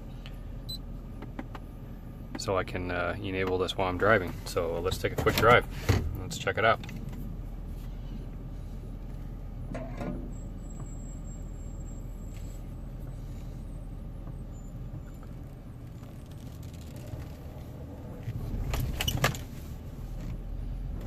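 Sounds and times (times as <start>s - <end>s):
pickup truck engine rumbling: 0.0s - 21.0s.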